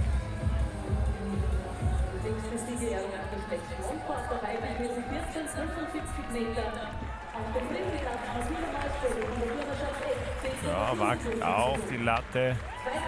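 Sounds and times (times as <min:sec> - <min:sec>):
crowd noise: 0:00.0 - 0:13.0
music over public address: 0:00.0 - 0:13.0
announcer voice over public address: 0:10.5 - 0:12.6.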